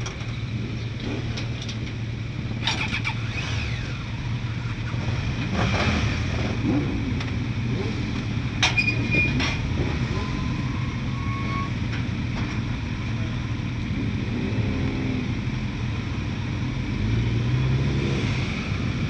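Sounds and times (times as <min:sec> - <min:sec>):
motorcycle engines idling: 0:00.0 - 0:16.8.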